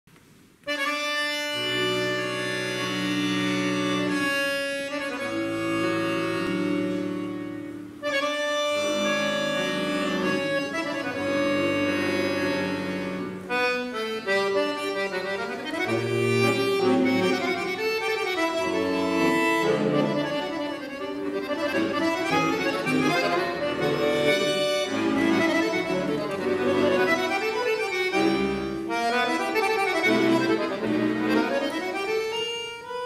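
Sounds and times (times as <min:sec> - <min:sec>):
button accordion melody: 0:00.7 - 0:33.0.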